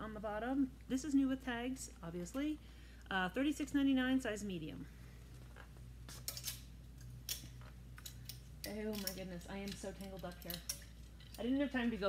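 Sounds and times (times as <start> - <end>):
low steady hum: 0.0 - 12.0
clothes hangers clicking on rack: 6.1 - 12.0.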